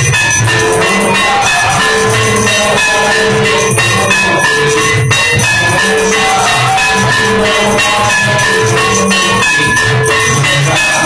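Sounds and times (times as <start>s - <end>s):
drum beat: 0.0s - 11.0s
gongs: 0.0s - 11.0s
ringing metal bells: 0.0s - 11.0s.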